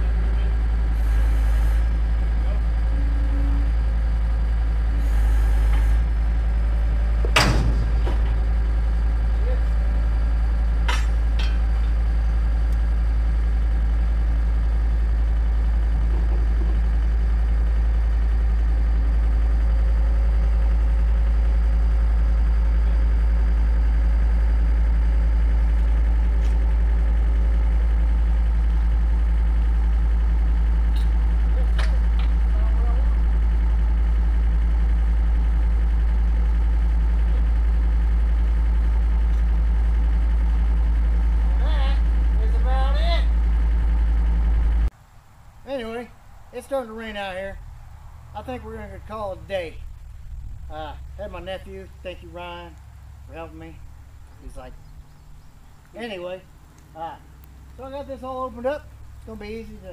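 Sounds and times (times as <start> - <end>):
diesel engine running under load: 0.0 - 59.9
light metal clanks: 7.2 - 8.5, 10.8 - 12.2, 30.9 - 32.5
sharp metallic bang: 7.3 - 8.4.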